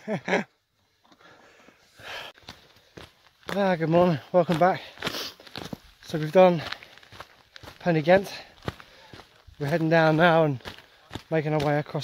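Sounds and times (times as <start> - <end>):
person breathing out: 1.2 - 2.4.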